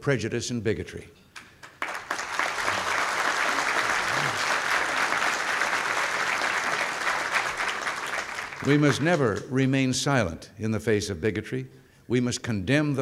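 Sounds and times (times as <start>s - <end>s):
audience applause: 1.6s - 9.4s.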